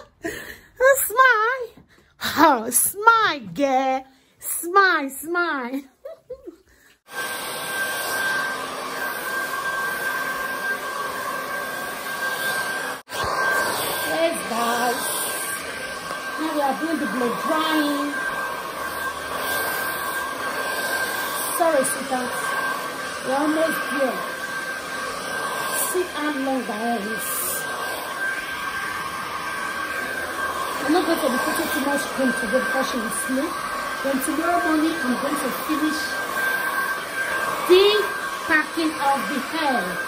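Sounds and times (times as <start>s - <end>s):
hair dryer running: 0.0s - 6.2s, 6.8s - 40.0s.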